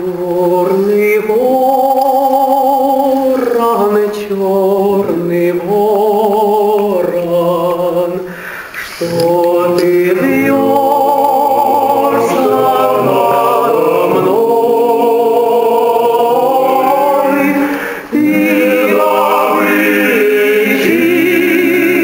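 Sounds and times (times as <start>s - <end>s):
male choir singing a cappella: 0.4s - 8.2s, 8.9s - 22.0s.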